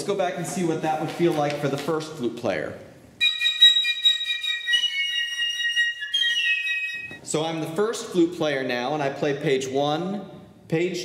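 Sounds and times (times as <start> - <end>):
flutes playing high held notes: 3.2 - 7.6.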